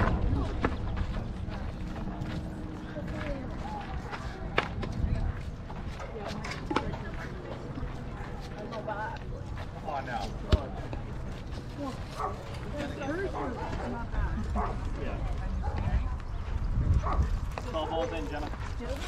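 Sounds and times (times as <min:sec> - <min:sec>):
wind rumble on microphone: 0:00.0 - 0:07.7, 0:14.0 - 0:19.0.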